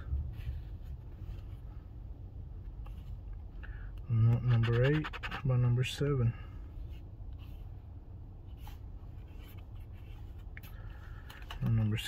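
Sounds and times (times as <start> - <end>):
low steady rumble: 0.0 - 12.0
scratching lottery ticket: 4.4 - 5.8.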